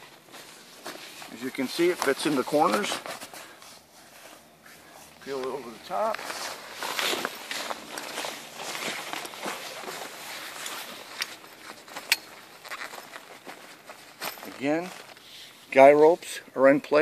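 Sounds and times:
canvas rustling and scraping: 0:00.0 - 0:15.9.

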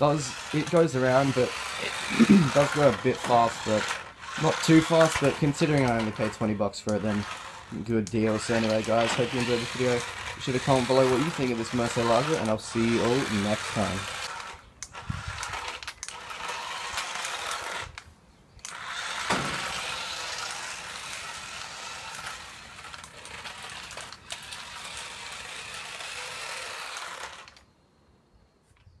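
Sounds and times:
plastic wheels hissing on concrete: 0:00.0 - 0:27.8
toy car motor whirring: 0:00.0 - 0:27.8.

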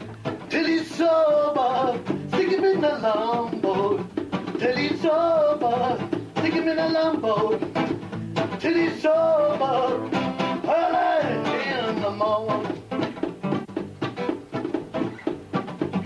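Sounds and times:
man singing folk song: 0:00.0 - 0:13.1
strummed acoustic guitar: 0:00.0 - 0:16.0.

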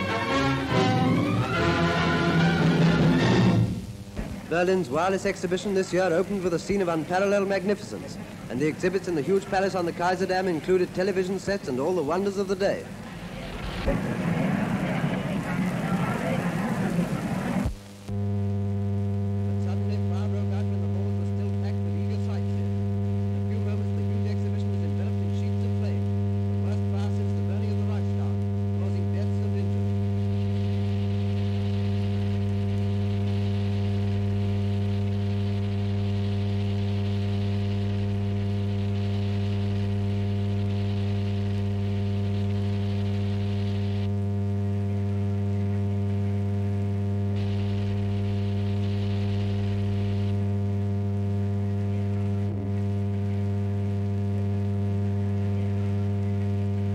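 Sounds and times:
low electrical hum: 0:03.2 - 0:56.9.

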